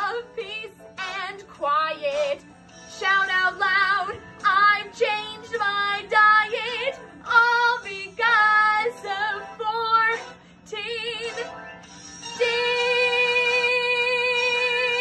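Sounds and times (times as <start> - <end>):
woman singing: 0.0 - 11.6, 12.3 - 15.0.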